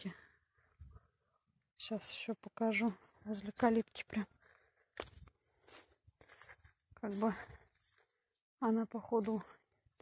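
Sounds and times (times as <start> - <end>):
footsteps on soil and grass: 4.0 - 10.0.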